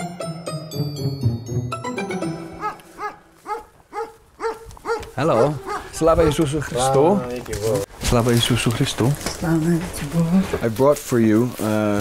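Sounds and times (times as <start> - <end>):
music: 0.0 - 2.9
dog barking: 2.6 - 6.0.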